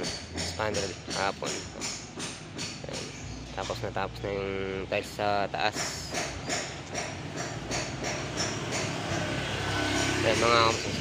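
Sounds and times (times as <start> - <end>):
low hum of traffic: 0.0 - 11.0.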